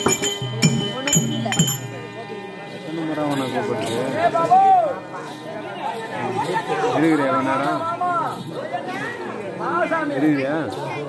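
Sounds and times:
bright metallic clinks: 0.0 - 4.1
murmur of voices: 0.0 - 11.0.

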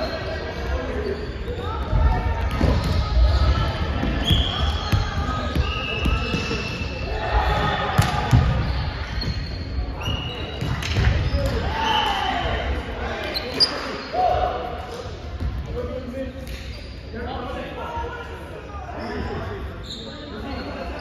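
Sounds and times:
shoes squeaking on floor: 19.8 - 21.0.

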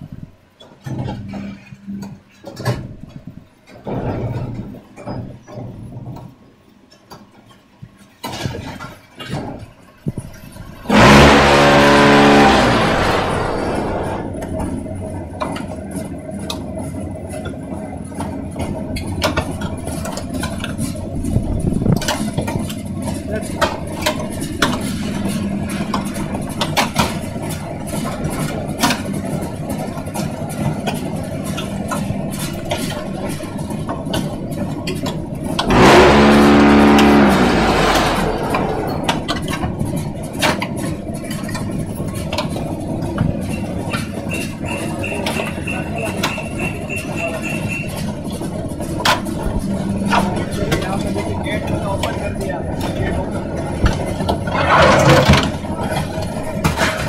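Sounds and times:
rattle of grit: 8.0 - 45.9, 47.9 - 57.0
concrete mixer running: 10.4 - 57.0
strong pitched hum: 10.8 - 15.4, 35.2 - 41.2.

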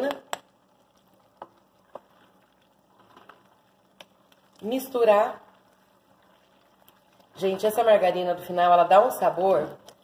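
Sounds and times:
faint stirring of food: 0.0 - 10.0.

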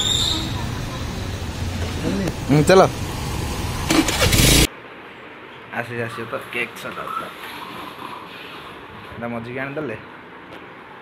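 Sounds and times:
vehicle engine running: 0.0 - 4.7
street traffic noise: 0.0 - 11.0.

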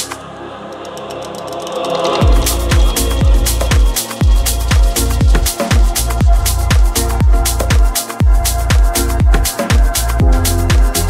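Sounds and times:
held synth chords: 0.0 - 11.0
light ticking percussion: 0.0 - 11.0.

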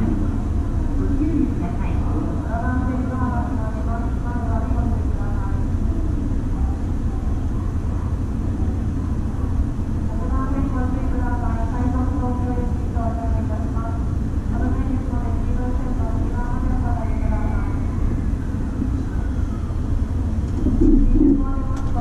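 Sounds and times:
low hum inside train car: 0.0 - 22.0.

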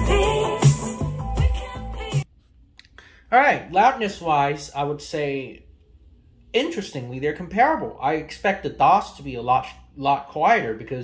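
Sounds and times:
music with heavy bass and vocals: 0.0 - 2.3.

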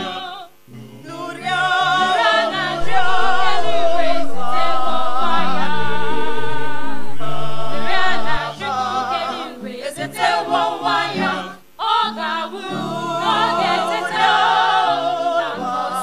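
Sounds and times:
choir singing a carol: 0.0 - 16.0.

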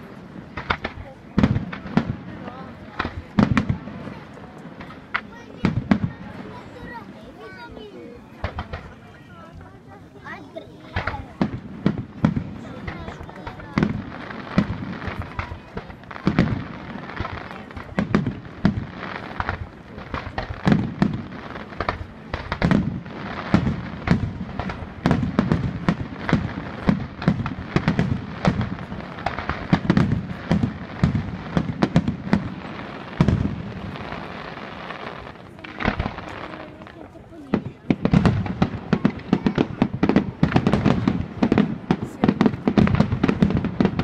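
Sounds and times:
firework crackle: 0.0 - 44.0
firework shells booming: 0.1 - 6.6, 8.4 - 9.0, 10.9 - 44.0.

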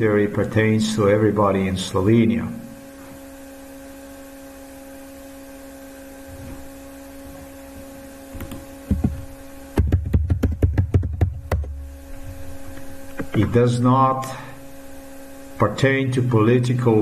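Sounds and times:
steady hum: 0.0 - 17.0.

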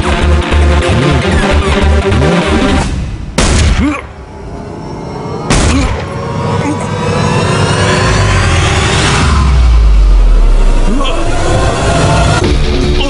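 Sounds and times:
sweeping tones rising in pitch: 4.2 - 12.4
deep rumble: 4.2 - 12.9.

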